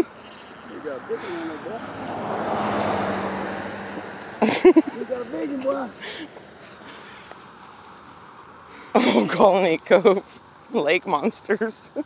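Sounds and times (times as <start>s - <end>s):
motor vehicle passing: 0.0s - 9.9s.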